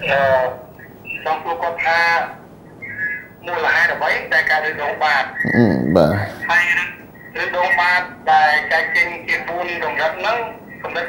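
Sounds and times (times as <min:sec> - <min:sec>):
person speaking over telephone: 0:00.0 - 0:00.6, 0:05.4 - 0:06.6.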